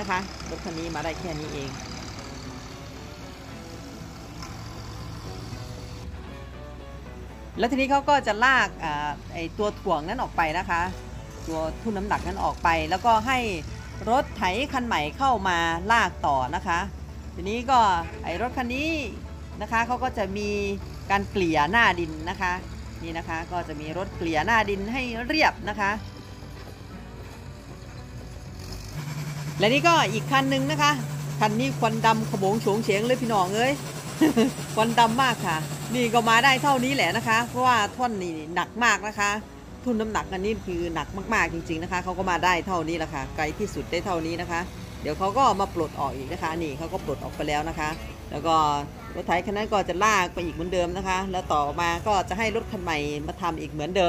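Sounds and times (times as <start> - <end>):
background music: 0.0 - 54.0
tractor engine running: 0.0 - 54.0.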